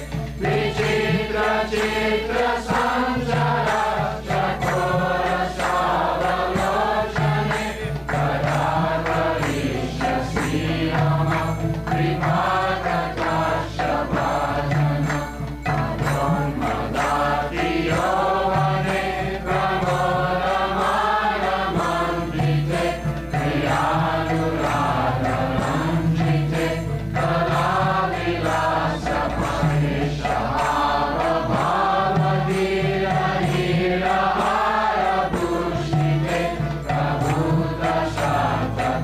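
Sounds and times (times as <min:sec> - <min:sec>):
instrumental accompaniment: 0:00.0 - 0:39.0
voices chanting a melody: 0:00.0 - 0:39.0.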